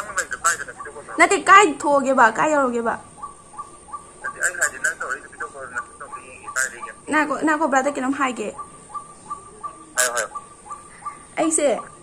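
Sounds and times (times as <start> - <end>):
small bird chirping: 0.0 - 12.0.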